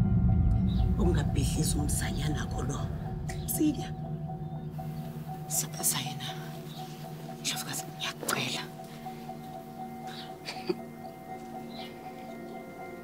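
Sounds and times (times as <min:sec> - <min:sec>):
low sustained music score: 0:00.0 - 0:13.0.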